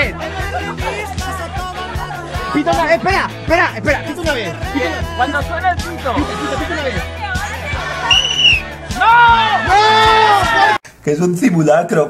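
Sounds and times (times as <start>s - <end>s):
hand whistle blast: 8.1s - 8.7s.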